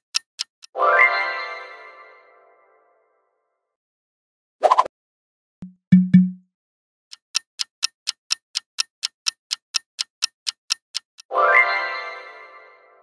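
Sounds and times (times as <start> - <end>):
clock ticking: 0.0 - 0.8, 5.6 - 6.4, 7.1 - 11.3.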